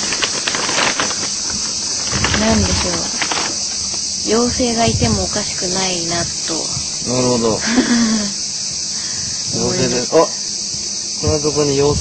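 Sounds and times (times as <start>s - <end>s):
insects chirping chorus: 0.0s - 12.0s.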